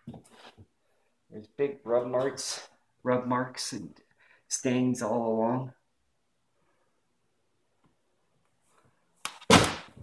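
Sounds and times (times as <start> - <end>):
loud thud: 9.5 - 10.0.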